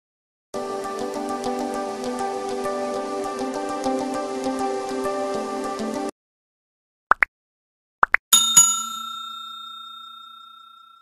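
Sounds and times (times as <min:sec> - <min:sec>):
bell ding: 0:08.4 - 0:11.0.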